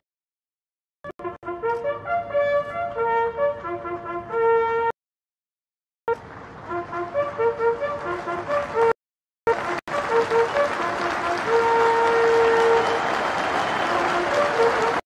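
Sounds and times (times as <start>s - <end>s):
bugles playing in unison: 1.2s - 4.9s, 6.7s - 8.9s, 9.5s - 15.0s.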